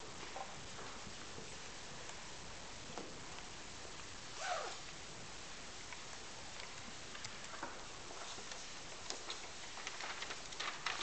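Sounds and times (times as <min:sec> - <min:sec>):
steady hiss: 0:00.0 - 0:11.0
paper clicks and rustles: 0:05.9 - 0:11.0.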